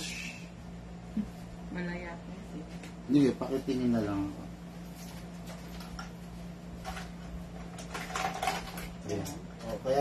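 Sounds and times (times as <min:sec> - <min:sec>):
steady low hum: 0:00.0 - 0:10.0
small hard objects clattering: 0:07.7 - 0:09.3.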